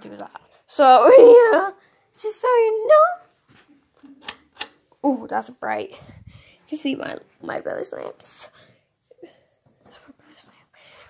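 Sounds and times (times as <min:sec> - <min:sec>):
soft breathy sounds: 0:05.8 - 0:06.8, 0:08.2 - 0:11.0.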